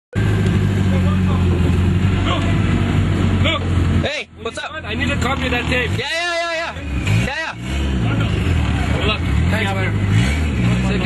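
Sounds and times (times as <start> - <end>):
car engine running: 0.1 - 11.0.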